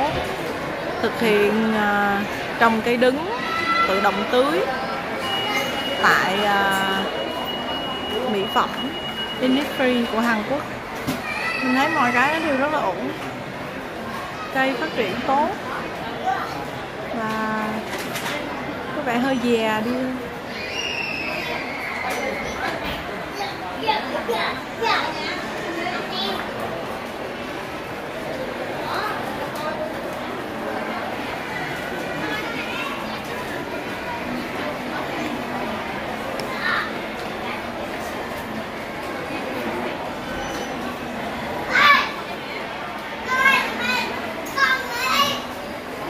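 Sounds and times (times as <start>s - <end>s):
murmur of busy shop: 0.0s - 46.0s.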